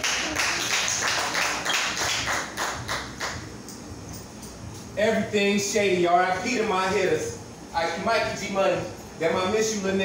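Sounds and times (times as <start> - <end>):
audience clapping: 0.0 - 3.5.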